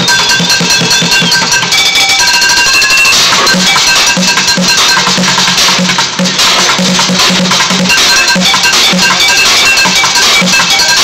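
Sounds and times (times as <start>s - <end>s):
high ringing tones: 0.0s - 6.0s, 7.7s - 11.0s.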